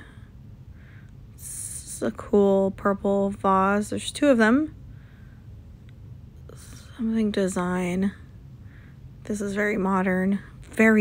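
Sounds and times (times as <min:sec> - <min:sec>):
short breath: 0:00.0 - 0:01.2, 0:04.9 - 0:05.6, 0:08.6 - 0:09.1
steady low hum: 0:00.0 - 0:11.0.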